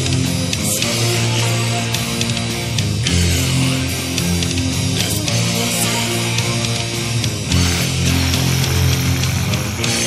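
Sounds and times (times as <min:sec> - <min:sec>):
distorted electric guitars: 0:00.0 - 0:10.0
drums and cymbals: 0:00.0 - 0:10.0.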